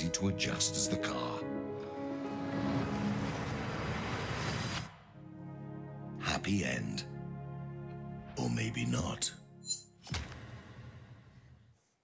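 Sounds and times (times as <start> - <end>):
soft background music: 0.0 - 10.4.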